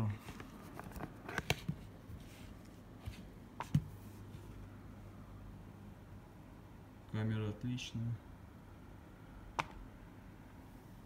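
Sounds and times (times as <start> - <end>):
hand tapping tablet: 9.5 - 9.8.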